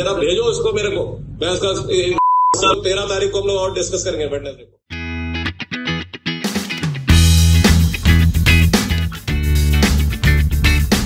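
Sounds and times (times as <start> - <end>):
man speaking angrily: 0.0 - 4.8
censor bleep tone: 2.2 - 2.8.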